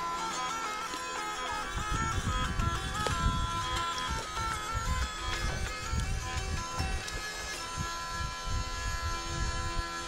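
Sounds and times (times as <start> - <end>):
hurdy-gurdy drone and melody: 0.0 - 10.0.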